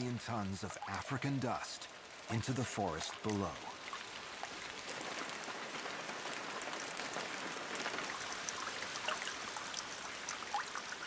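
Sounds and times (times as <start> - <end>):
rain on water and leaves: 0.0 - 11.0.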